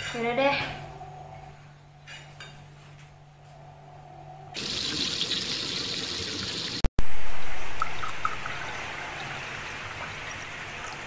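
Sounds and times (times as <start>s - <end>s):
water pouring into glass: 7.4s - 9.4s.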